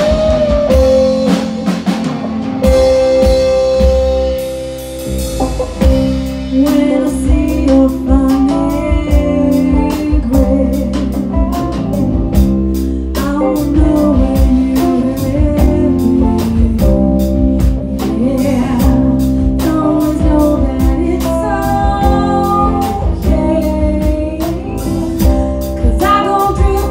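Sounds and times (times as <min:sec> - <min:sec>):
bass: 0:00.0 - 0:26.9
drum kit beat: 0:00.0 - 0:26.9
electric and acoustic guitars: 0:00.0 - 0:26.9
woman singing: 0:06.5 - 0:12.2, 0:13.0 - 0:26.9.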